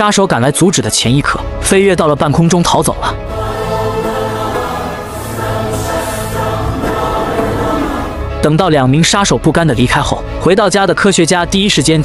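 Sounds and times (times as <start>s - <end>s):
choir singing held chord: 3.2s - 8.4s
low steady note: 3.3s - 8.4s.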